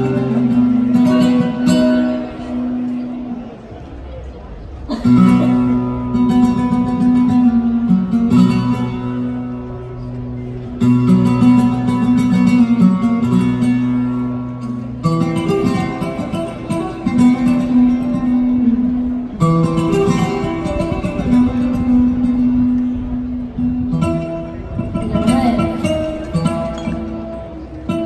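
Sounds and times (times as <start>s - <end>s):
flamenco guitar strummed and picked: 0.0s - 28.0s.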